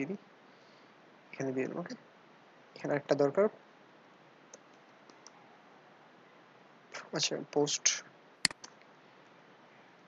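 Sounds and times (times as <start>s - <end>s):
person speaking: 1.4s - 2.0s, 7.0s - 8.7s
computer keyboard clicks: 8.5s - 8.8s.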